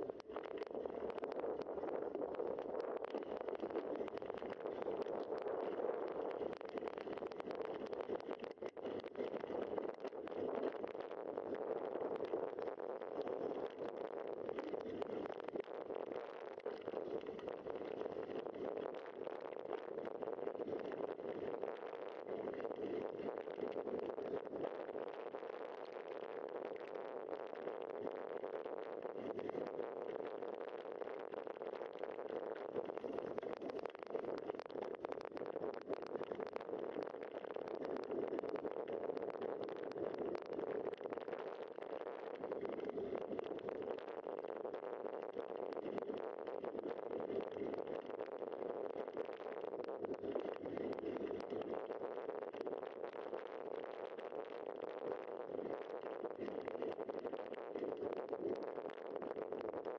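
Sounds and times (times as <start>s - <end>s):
crackles and rattles from grit: 0.0s - 59.9s.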